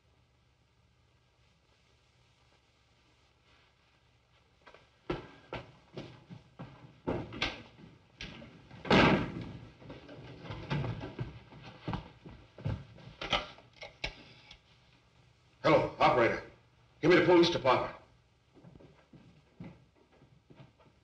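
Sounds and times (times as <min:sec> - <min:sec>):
footsteps on hard floor: 0:04.3 - 0:08.6, 0:09.3 - 0:13.3, 0:18.5 - 0:21.0.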